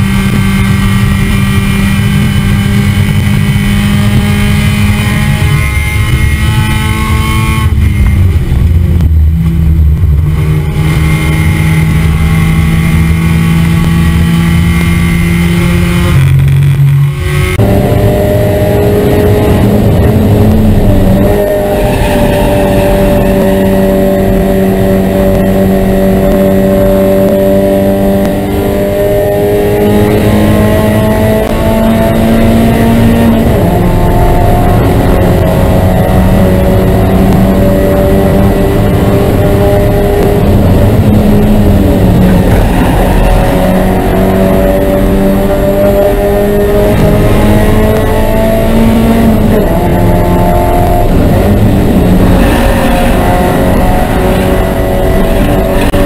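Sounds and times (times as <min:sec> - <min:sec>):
race car engine revving high: 0:00.0 - 0:56.0
road noise: 0:00.0 - 0:56.0
wind noise: 0:00.0 - 0:56.0.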